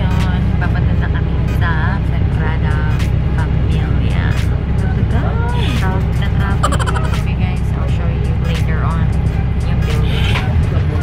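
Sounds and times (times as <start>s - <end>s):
bus engine and road noise: 0.0s - 11.0s
faint indistinct voices or music: 0.0s - 11.0s.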